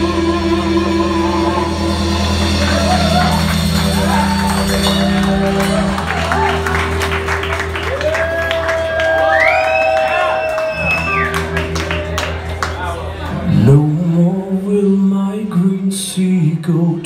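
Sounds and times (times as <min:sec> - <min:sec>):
live rock band playing: 0:00.0 - 0:16.1.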